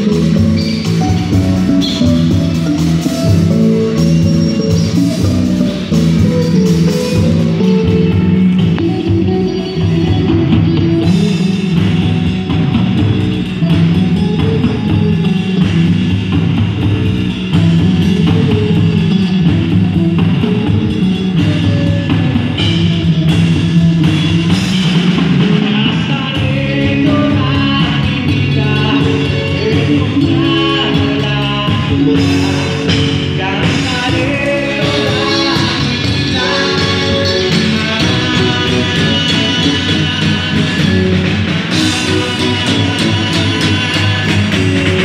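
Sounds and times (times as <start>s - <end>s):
live rock band playing: 0.0s - 45.0s.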